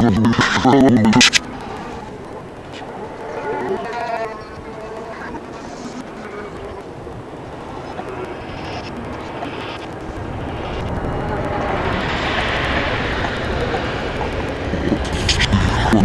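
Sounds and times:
background voices: 0:00.0 - 0:16.0
vehicle passing: 0:01.3 - 0:16.0.

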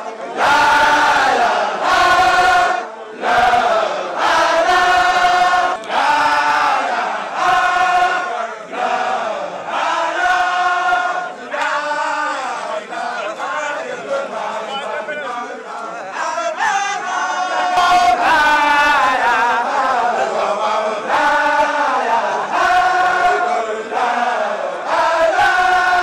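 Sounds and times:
men chanting in unison: 0:00.1 - 0:26.0.

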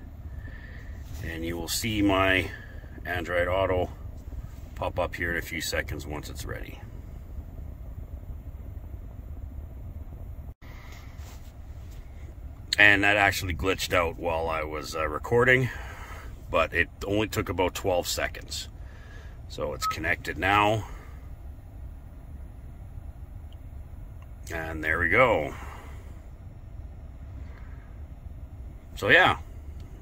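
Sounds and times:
low rumble inside car cabin: 0:00.0 - 0:30.0.

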